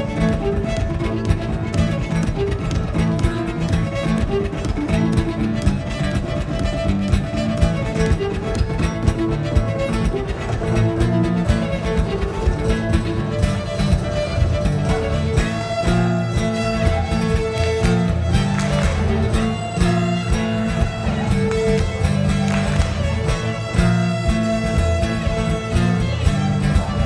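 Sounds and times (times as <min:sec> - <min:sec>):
fiddle tune: 0:00.0 - 0:27.0
guitar: 0:00.0 - 0:27.0.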